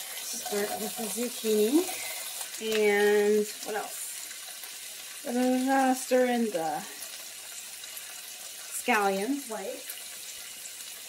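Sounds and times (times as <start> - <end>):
zucchini sizzling in a frying pan: 0.0 - 11.0.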